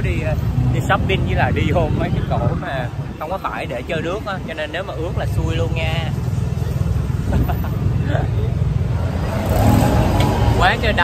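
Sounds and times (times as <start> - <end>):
wind buffeting microphone: 0.0 - 5.8
motorbike road noise: 0.0 - 11.0.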